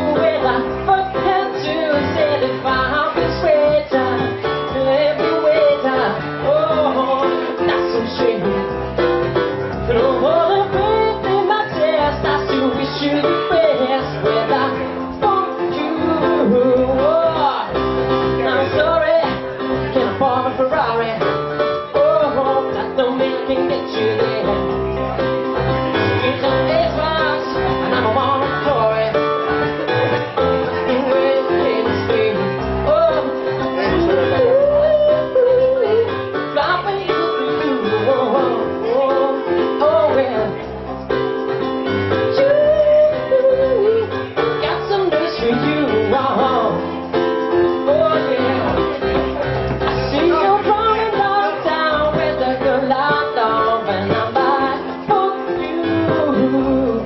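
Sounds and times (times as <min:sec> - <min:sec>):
man singing: 0:00.0 - 0:08.7, 0:09.8 - 0:21.4, 0:22.0 - 0:25.0, 0:25.9 - 0:29.3, 0:30.7 - 0:40.6, 0:42.3 - 0:57.0
electric keyboard chords: 0:00.0 - 0:57.0.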